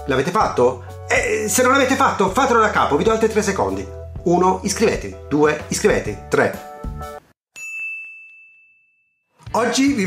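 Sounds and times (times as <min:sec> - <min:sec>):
bright electronic ding: 0:07.6 - 0:09.1.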